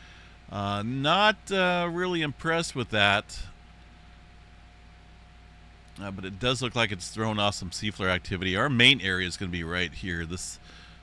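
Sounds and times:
thin steady whine: 0.0 - 11.0.

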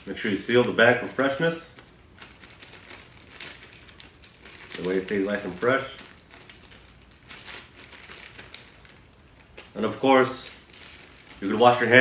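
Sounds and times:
plastic zip bag crinkling: 0.0 - 12.0.

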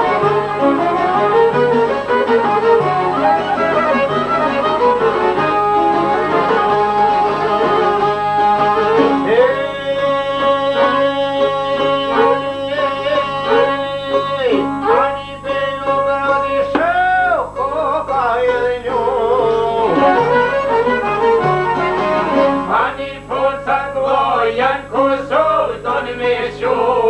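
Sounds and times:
plucked lute: 0.0 - 15.2, 17.7 - 22.8
piano accordion: 0.0 - 16.6, 19.4 - 23.2
violin: 0.0 - 16.9, 18.4 - 23.0
person singing ornamented line: 3.1 - 16.7.

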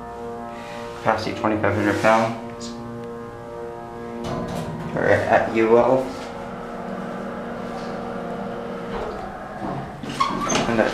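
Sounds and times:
hydraulic elevator humming: 0.0 - 10.9
rushing noise: 3.2 - 10.9.

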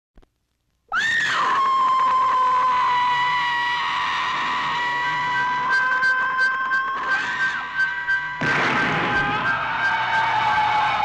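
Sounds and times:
high-pitched scream: 0.9 - 11.0.

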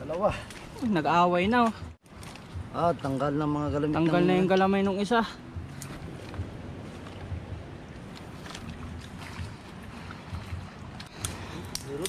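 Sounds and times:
water sloshing and splashing: 0.0 - 12.0.

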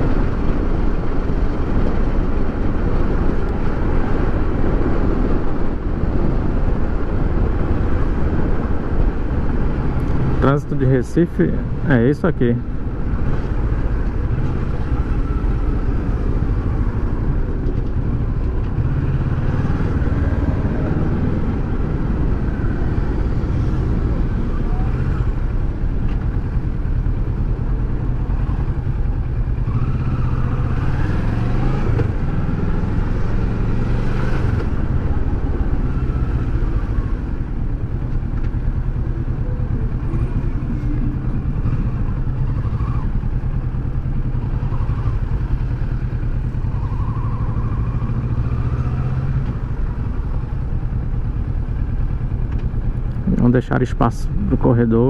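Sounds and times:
motorcycle engine running: 11.8 - 54.6.

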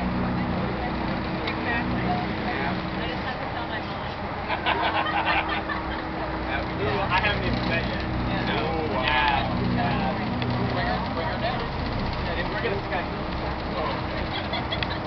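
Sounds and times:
boat engine humming: 0.0 - 15.0
churned water from wake: 0.0 - 15.0.

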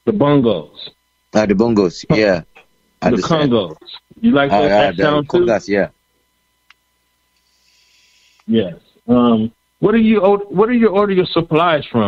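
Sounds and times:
faint click: 6.7 - 7.5
faint hiss: 7.3 - 12.0.

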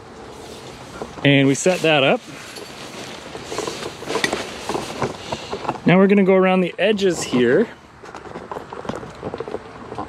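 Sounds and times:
tent fabric rustling: 0.2 - 6.0.

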